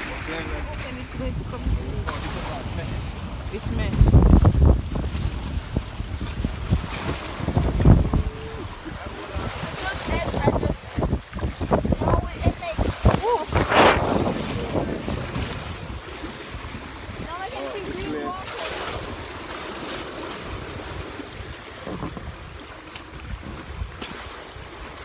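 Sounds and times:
waves washing against hull: 0.0 - 25.0
wind buffeting microphone: 0.0 - 25.0.

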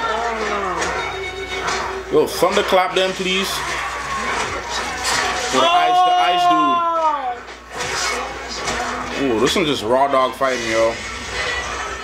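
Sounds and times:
faint television sound: 0.0 - 12.0.

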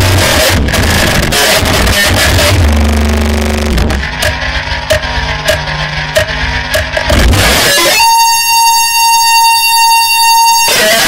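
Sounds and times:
distorted guitar noise: 0.0 - 11.0
loud buzzing tone: 0.0 - 11.0.

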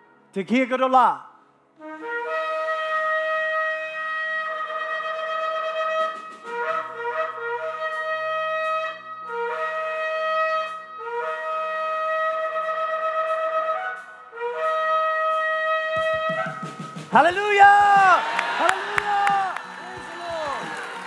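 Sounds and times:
trumpet blasts: 1.8 - 21.0.

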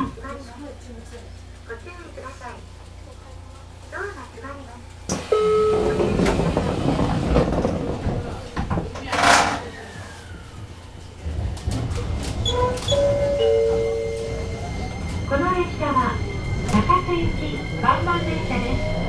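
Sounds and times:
train rumble pulling away: 0.0 - 19.0
train doors sliding shut: 5.1 - 19.0.

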